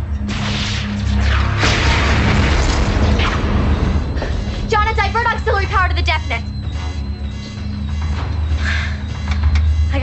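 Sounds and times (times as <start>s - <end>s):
deep booming explosions: 0.2s - 5.4s.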